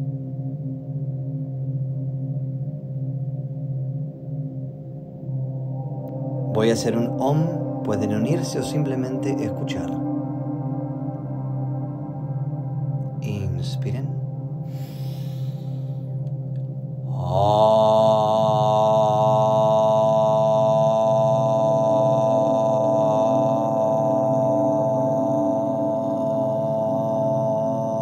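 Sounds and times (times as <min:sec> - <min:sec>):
meditation music with low drone: 0:00.0 - 0:28.0
person chanting om: 0:05.2 - 0:28.0
breath drawn in: 0:14.7 - 0:16.2.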